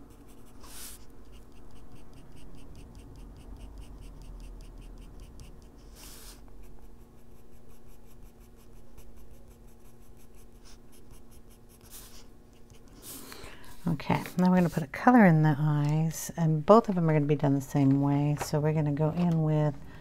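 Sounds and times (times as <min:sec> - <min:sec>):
colored pencil scratching on paper: 0:00.0 - 0:15.2.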